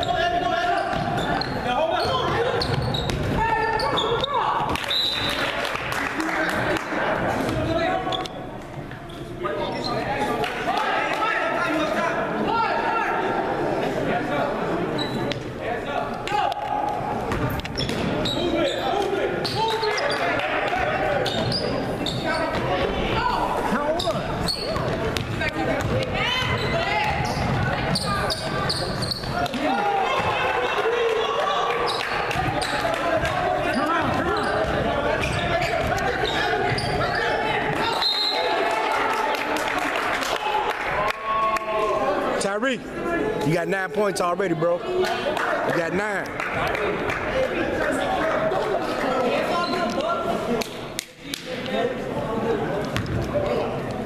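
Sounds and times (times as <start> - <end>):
spectator chatter and calls: 0.0 - 54.0.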